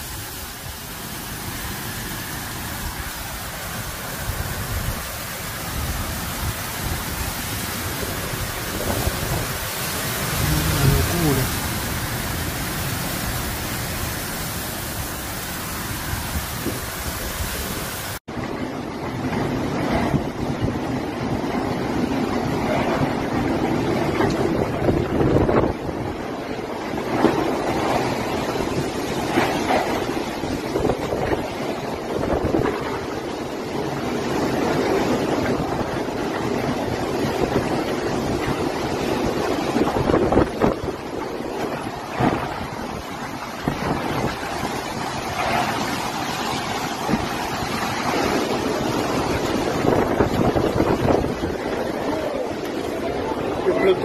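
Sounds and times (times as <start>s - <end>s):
heavy rain: 0.0s - 54.0s
wind gusting on microphone: 0.0s - 54.0s.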